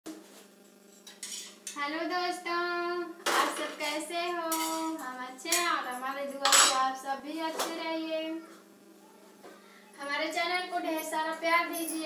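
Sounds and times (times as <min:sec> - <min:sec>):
metal dishes clinking and scraping: 0:00.9 - 0:01.8, 0:06.4 - 0:06.8.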